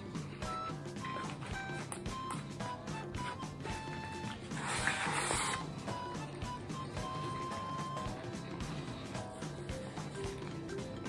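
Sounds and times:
background music: 0:00.0 - 0:11.0
loud slurp: 0:04.5 - 0:05.7.

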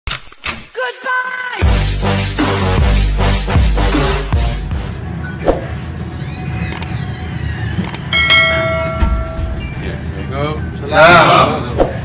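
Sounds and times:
bell-like ding: 0:08.1 - 0:10.0.

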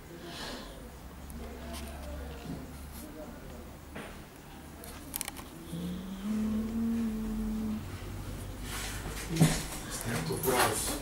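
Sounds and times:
person murmuring and whimpering: 0:05.6 - 0:08.0.

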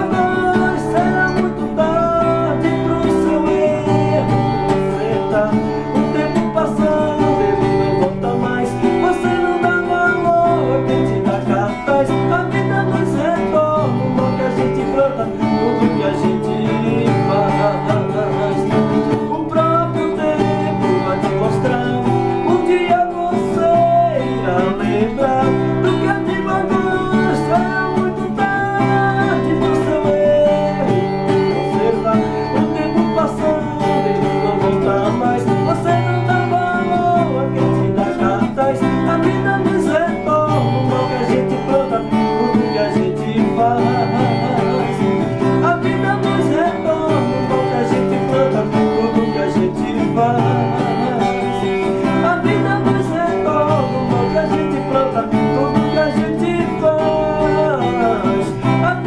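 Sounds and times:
acoustic guitar strumming: 0:00.0 - 0:59.0
man singing a ballad: 0:00.0 - 0:59.0.

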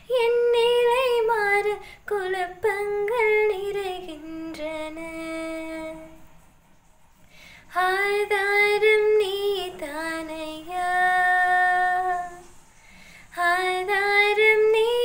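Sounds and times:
woman singing gospel solo: 0:00.0 - 0:06.2, 0:13.3 - 0:15.0.

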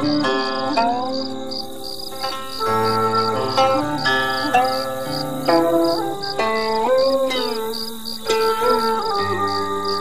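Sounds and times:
plucked string melody: 0:00.0 - 0:10.0.

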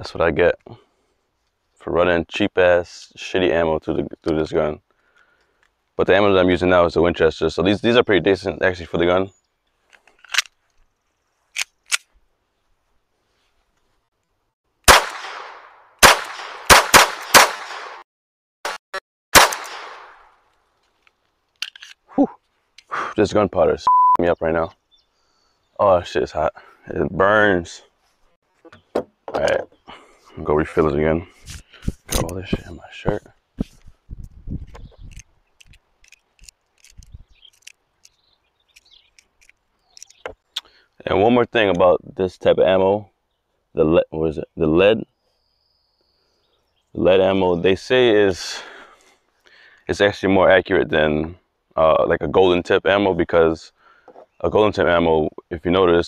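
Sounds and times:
pistol handling clicks: 0:10.2 - 0:10.6, 0:19.4 - 0:20.1, 0:21.0 - 0:22.0
pistol shots: 0:14.9 - 0:18.0, 0:18.7 - 0:20.3
cartridges clicking into magazine: 0:21.5 - 0:22.0.

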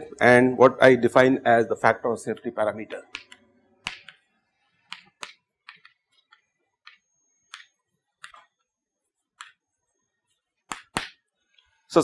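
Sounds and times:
chalk tapping on a chalkboard: 0:04.9 - 0:08.5, 0:10.7 - 0:11.2.

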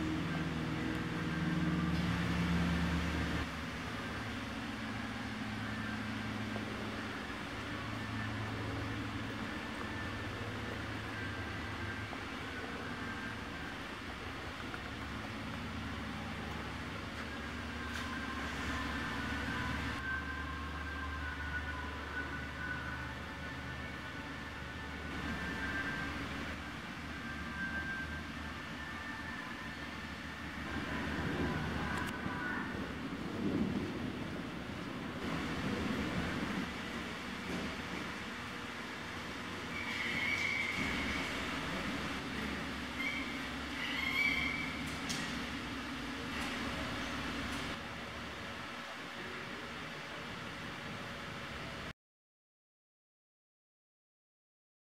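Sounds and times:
low mechanical rumble and hum: 0:00.0 - 0:51.9.

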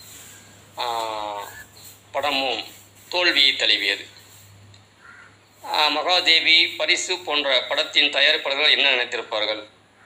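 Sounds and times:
man narrating: 0:00.8 - 0:04.2, 0:05.6 - 0:09.8.

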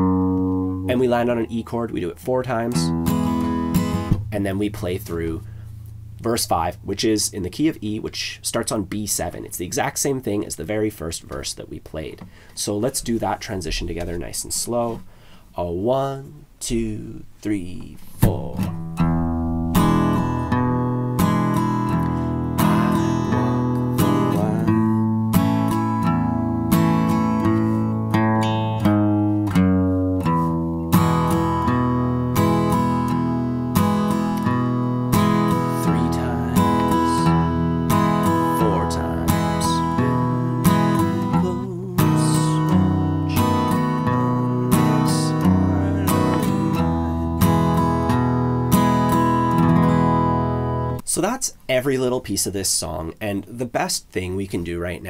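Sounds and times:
acoustic guitar strumming: 0:00.0 - 0:15.4, 0:16.7 - 0:51.1.

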